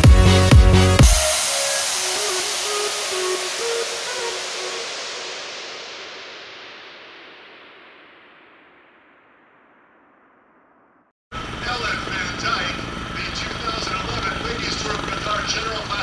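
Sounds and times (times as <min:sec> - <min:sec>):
electronic dance beat: 0:00.0 - 0:06.9
bright hissing wash: 0:01.0 - 0:09.0.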